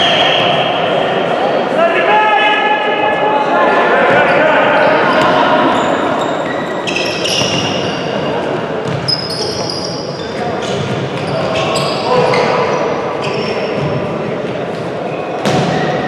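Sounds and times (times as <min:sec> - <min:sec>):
players calling out: 0:00.0 - 0:13.9
shoes squeaking on floor: 0:05.0 - 0:14.0.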